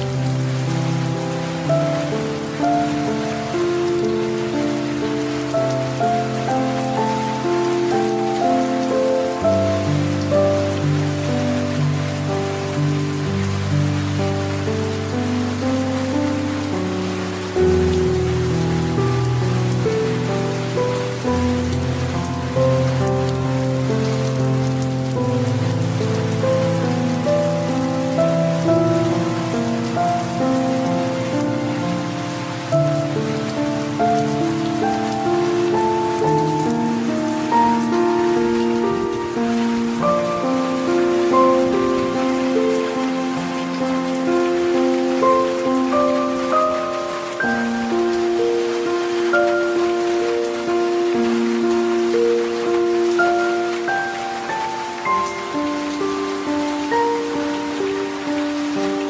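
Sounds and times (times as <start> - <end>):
slow soft music: 0.0 - 59.0
steady rain: 0.0 - 59.0.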